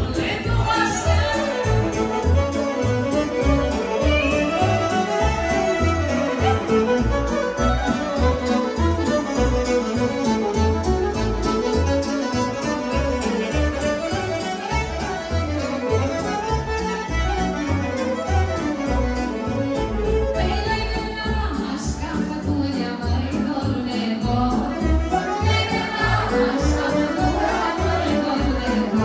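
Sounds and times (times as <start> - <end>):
violin: 0.0 - 29.0
saxophone: 1.2 - 20.6.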